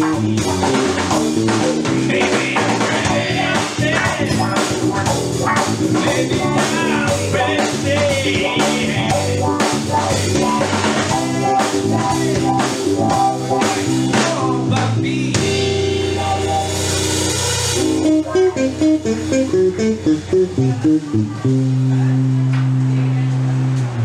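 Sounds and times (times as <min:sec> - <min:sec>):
live rock band playing: 0:00.0 - 0:24.0.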